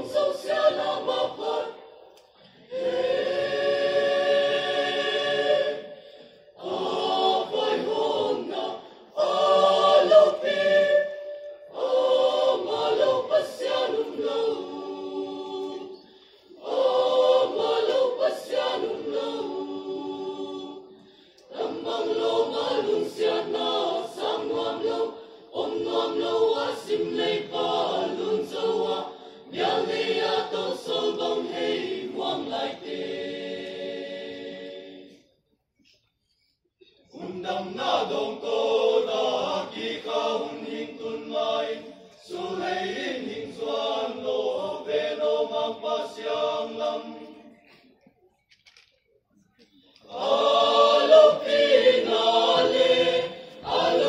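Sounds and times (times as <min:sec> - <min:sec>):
mixed choir singing unaccompanied: 0:00.0 - 0:35.4, 0:37.0 - 0:48.0, 0:49.9 - 0:54.0.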